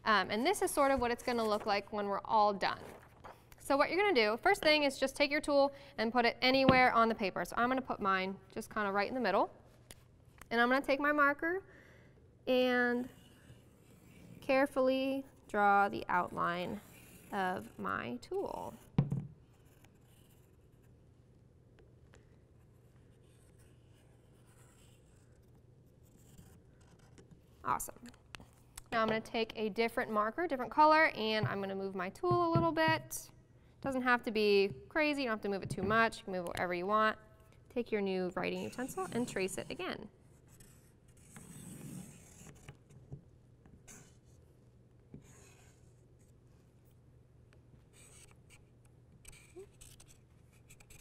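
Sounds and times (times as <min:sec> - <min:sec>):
marker drawing on paper: 0:16.1 - 0:21.0, 0:22.6 - 0:27.8, 0:38.4 - 0:42.9, 0:43.8 - 0:44.5, 0:45.1 - 0:46.4, 0:47.9 - 0:51.0.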